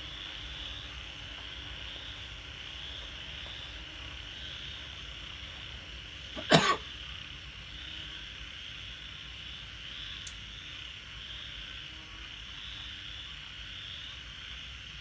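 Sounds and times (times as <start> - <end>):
night insects chirring: 0.0 - 15.0
person coughing: 6.4 - 6.9
faint click: 10.2 - 10.4.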